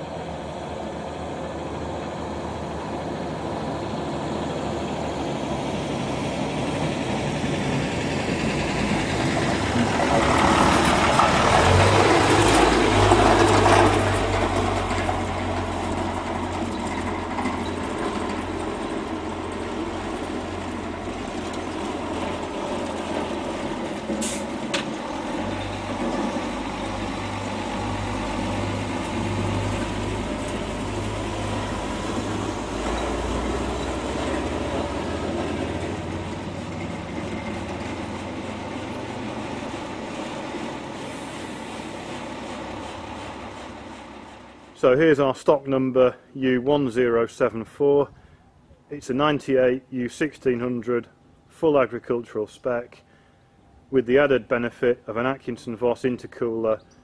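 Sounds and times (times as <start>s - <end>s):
truck diesel engine running: 0.0s - 45.4s.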